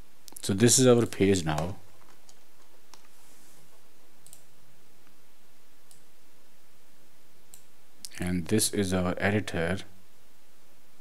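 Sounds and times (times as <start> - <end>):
faint steady hiss: 0.0 - 11.0
computer mouse clicks: 1.5 - 3.2, 4.2 - 4.5, 5.9 - 6.1.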